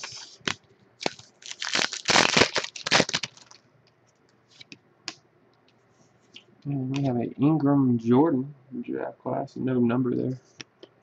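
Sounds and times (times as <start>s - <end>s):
foil wrapper crinkling and tearing: 0.0s - 3.6s.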